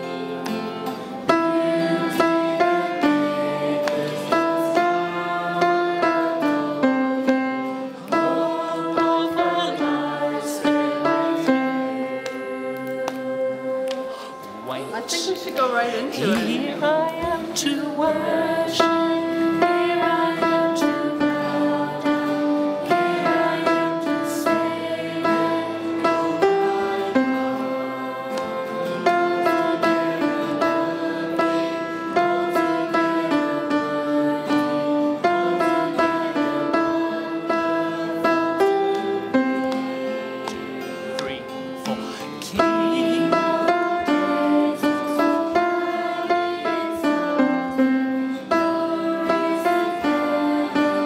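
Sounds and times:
small choir singing: 0.0 - 14.6, 15.9 - 51.0
plucked acoustic guitar: 0.0 - 51.0.

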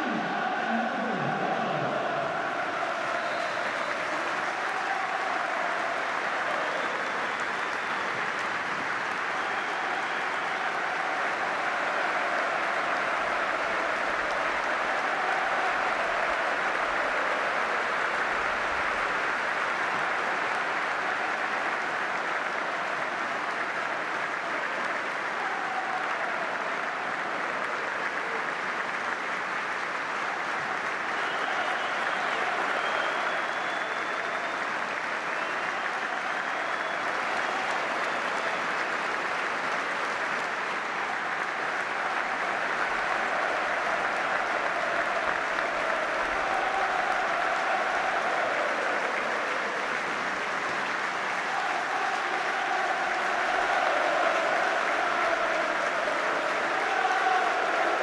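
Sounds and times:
stadium crowd clapping: 0.0 - 58.0.

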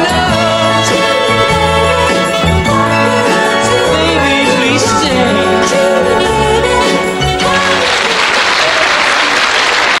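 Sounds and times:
audience applauding: 7.4 - 10.0.

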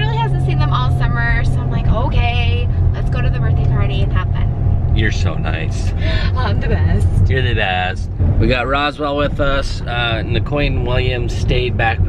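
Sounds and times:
car road and engine rumble: 0.0 - 12.0
people talking: 0.0 - 12.0.

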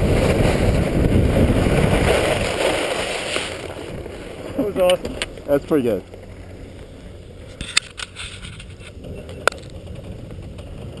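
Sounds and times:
skis scraping on snow: 0.0 - 11.0.

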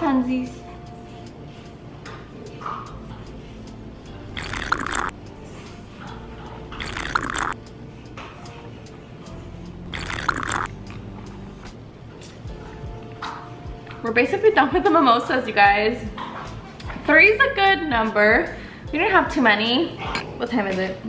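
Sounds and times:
soft background music: 0.0 - 21.0
slurping sips from a glass: 4.3 - 5.1, 6.8 - 7.6, 9.9 - 10.7.

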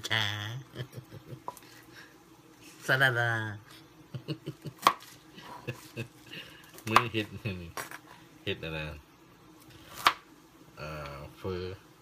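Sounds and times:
knife chopping on cutting board: 4.8 - 5.2, 6.8 - 8.0, 9.9 - 10.2.

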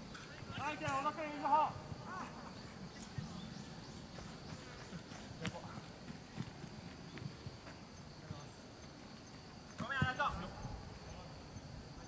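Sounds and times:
faint high hiss: 0.0 - 12.0.

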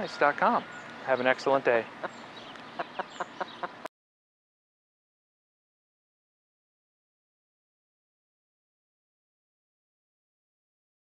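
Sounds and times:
chickens clucking: 0.0 - 3.9
faint outdoor background noise: 0.0 - 3.9.

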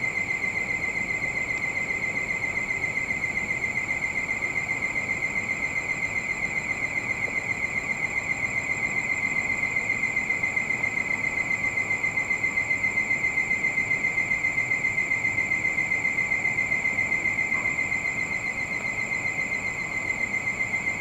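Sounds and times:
insects trilling: 0.0 - 21.0.

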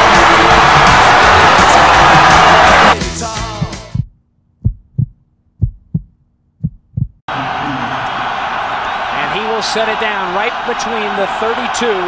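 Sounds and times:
stadium crowd noise: 0.0 - 3.0, 7.3 - 12.0
heartbeat thumps: 3.4 - 7.2.

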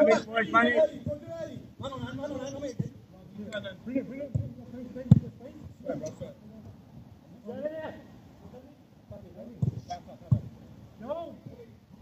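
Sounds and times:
football being kicked: 4.3 - 5.3, 9.5 - 10.5.

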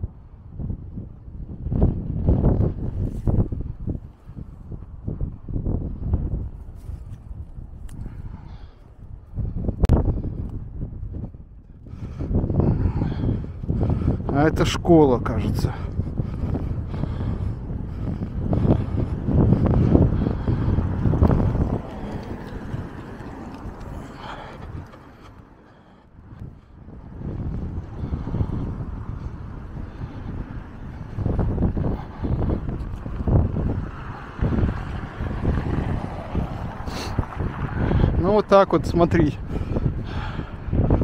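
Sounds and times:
gusty wind on microphone: 0.0 - 41.0.

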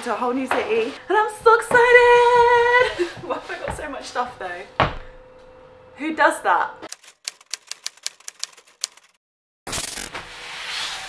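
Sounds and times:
rapid key clicks: 6.9 - 9.2.

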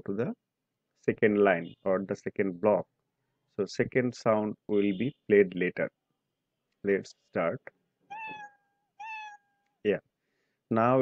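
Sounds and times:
cat meow sound effect: 8.1 - 9.6.

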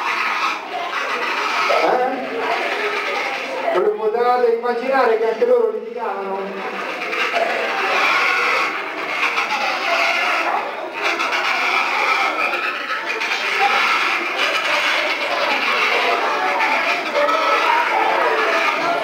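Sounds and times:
penguins calling: 0.0 - 3.8, 6.1 - 19.0.

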